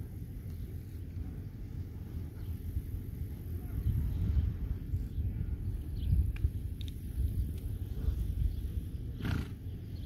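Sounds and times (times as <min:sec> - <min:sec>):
wind rumble on microphone: 0:00.0 - 0:10.0
horse snorting: 0:09.2 - 0:09.6.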